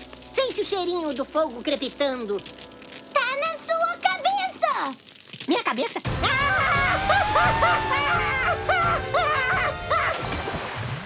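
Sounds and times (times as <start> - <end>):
comic background music: 6.1 - 10.9.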